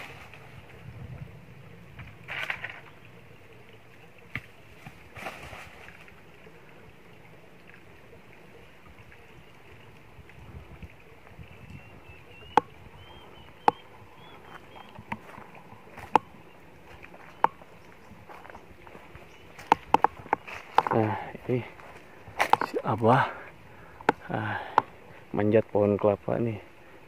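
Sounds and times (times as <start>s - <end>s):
footsteps in dry leaves: 0.0s - 0.7s, 14.5s - 16.1s, 16.8s - 22.9s.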